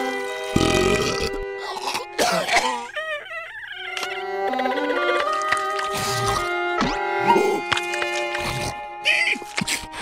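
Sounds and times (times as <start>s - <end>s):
background music: 0.0s - 10.0s
wavering crying sounds: 1.2s - 7.8s.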